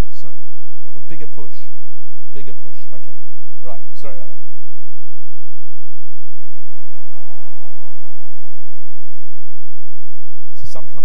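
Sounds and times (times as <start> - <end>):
low hum: 0.1 - 11.0.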